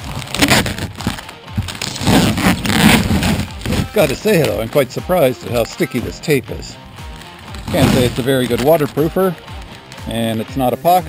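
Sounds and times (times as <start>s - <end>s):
packing tape ripping off wood: 0.0s - 5.3s, 7.0s - 10.4s.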